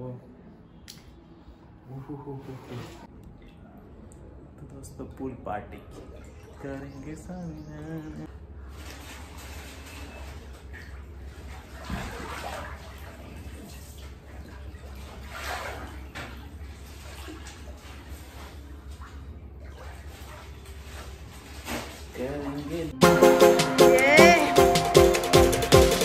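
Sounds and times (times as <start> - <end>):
water sloshing and splashing: 5.7 - 23.0.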